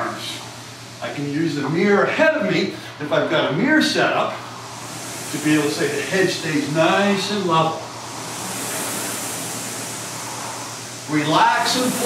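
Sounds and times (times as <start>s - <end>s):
rowing machine fan whooshing: 0.0s - 12.0s.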